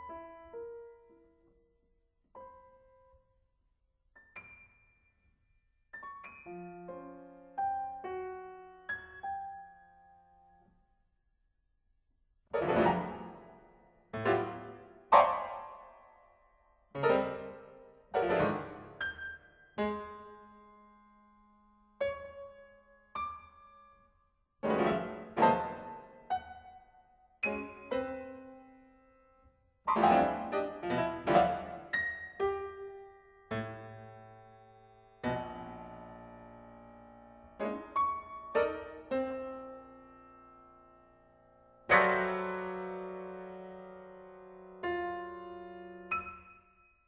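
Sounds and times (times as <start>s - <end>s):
piano chords ringing: 29.9s - 46.6s.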